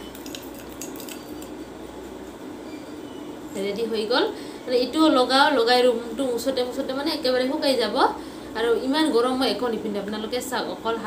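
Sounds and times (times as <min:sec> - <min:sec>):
spoon clinking against glass bowl: 0:00.0 - 0:01.7.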